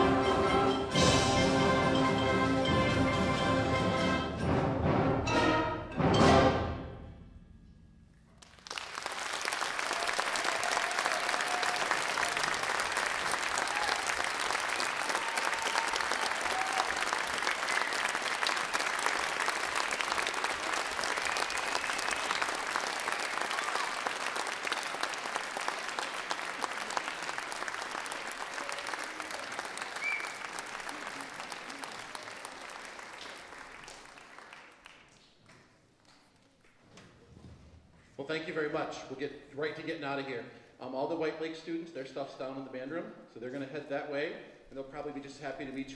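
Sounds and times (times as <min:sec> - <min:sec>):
audience applause: 0:08.4 - 0:35.3.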